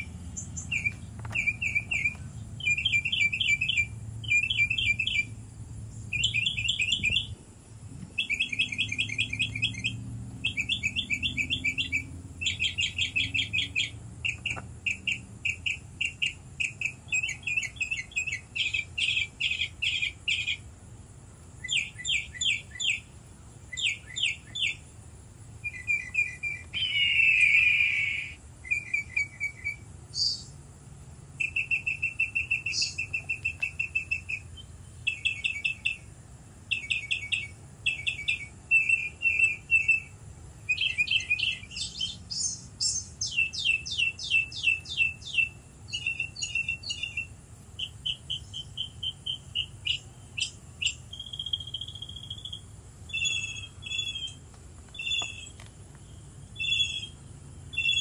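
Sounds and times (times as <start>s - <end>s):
small birds trilling: 0.0s - 58.0s.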